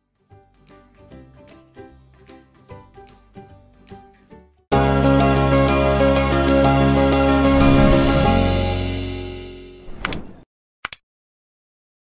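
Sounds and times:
short swish: 7.6 - 8.7.

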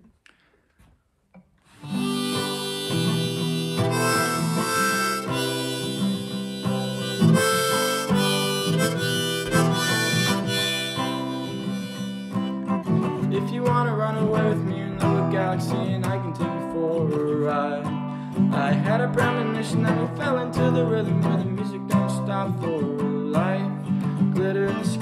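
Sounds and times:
acoustic guitar: 1.6 - 25.0
harmonica melody: 1.7 - 13.8.

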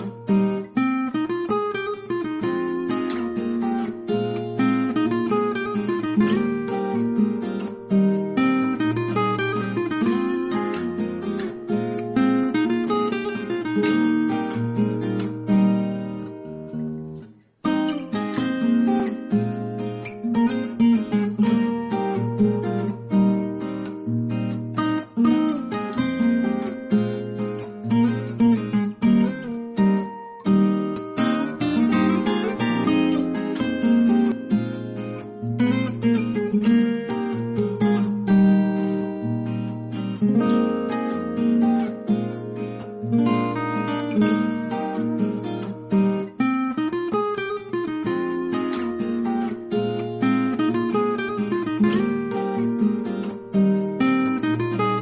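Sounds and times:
acoustic guitar music: 0.0 - 55.0.

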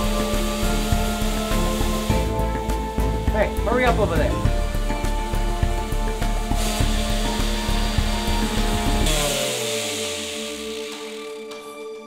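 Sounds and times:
orbital sander running: 0.0 - 11.8.

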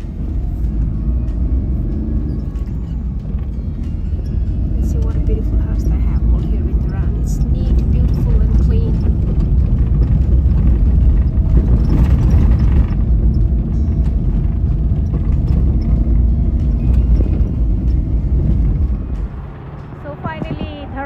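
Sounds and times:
moving vehicle rumble: 0.0 - 21.0.

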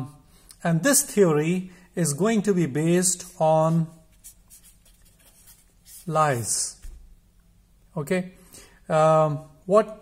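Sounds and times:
marker writing on paper: 4.1 - 6.7.

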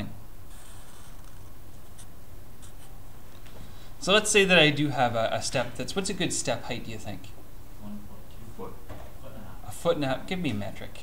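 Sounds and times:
steady low hum: 0.0 - 11.0
marker scratching on paper: 0.5 - 3.0.

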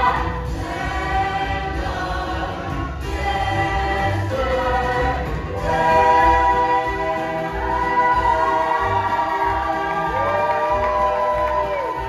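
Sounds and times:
ensemble singing in chorus: 0.0 - 12.0
musical accompaniment: 0.0 - 12.0.

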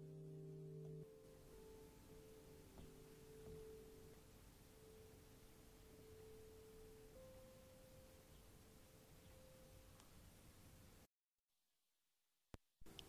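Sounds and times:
soft sustained piano notes: 0.0 - 11.1.

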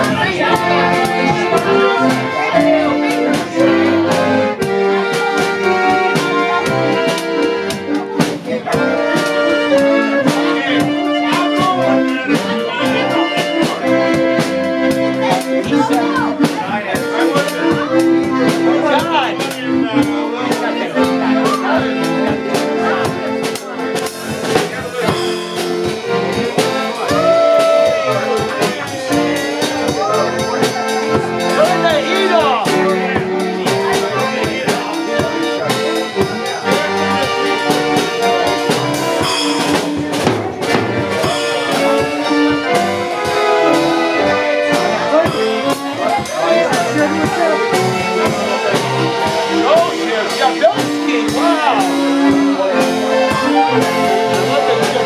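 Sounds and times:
concertina playing a melody: 0.0 - 23.8
concertina melody with chords: 0.0 - 55.0
drum kit beat: 0.0 - 55.0.

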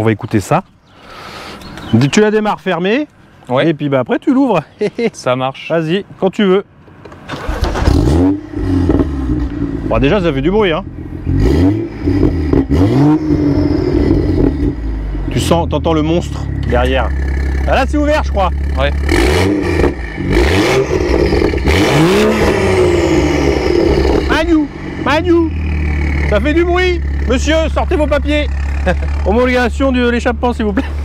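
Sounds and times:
car engine starting and idling: 6.9 - 31.0.

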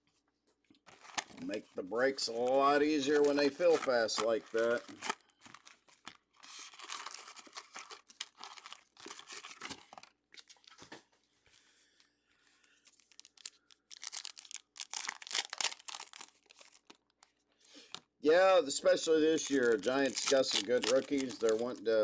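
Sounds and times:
wrappers torn and crinkled: 0.8 - 1.6, 2.2 - 10.8, 12.9 - 17.4, 19.3 - 21.8.

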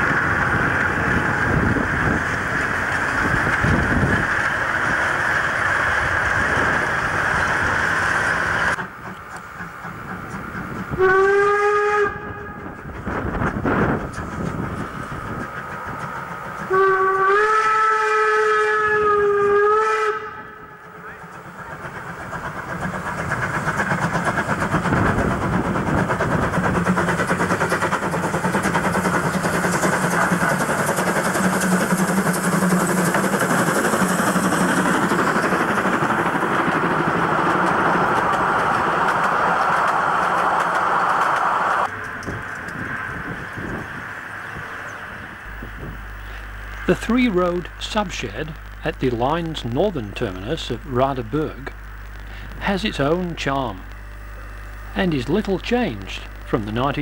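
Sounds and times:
train rumbling past: 0.0 - 57.0
steam whistle blasts: 11.0 - 12.6, 16.7 - 20.7.

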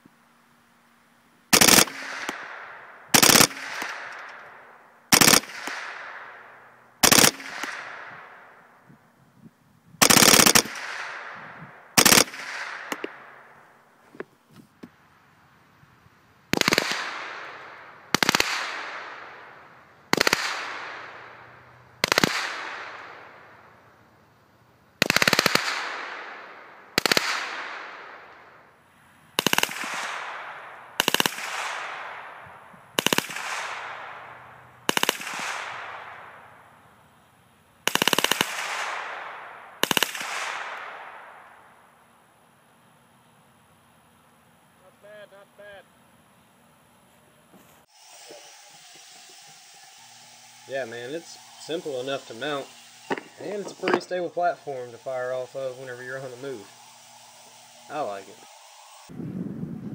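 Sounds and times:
rifle firing rapid bursts: 1.5 - 4.2, 5.1 - 6.2, 7.0 - 8.0, 10.0 - 11.3, 12.0 - 13.1, 16.5 - 19.3, 20.1 - 21.2, 22.0 - 23.2, 25.0 - 26.4, 27.0 - 28.1, 29.4 - 32.1, 33.0 - 36.2, 37.8 - 40.8
gunshot echo: 1.6 - 4.4.

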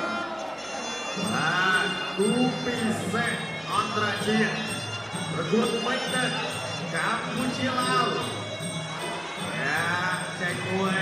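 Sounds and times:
reedy wind instrument melody: 0.0 - 11.0.

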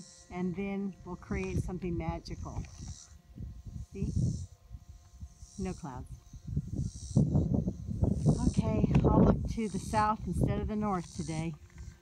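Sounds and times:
high insect buzz: 0.0 - 12.0
gusty wind on microphone: 1.1 - 12.0.

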